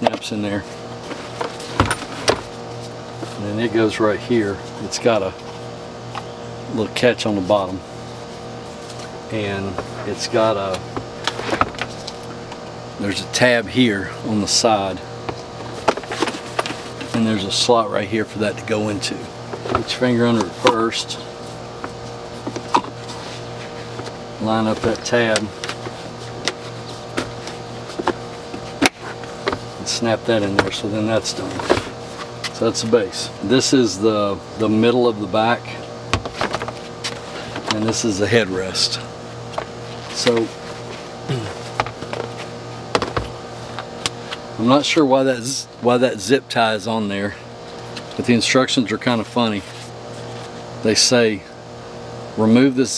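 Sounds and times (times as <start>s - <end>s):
steady hum: 0.0s - 52.9s.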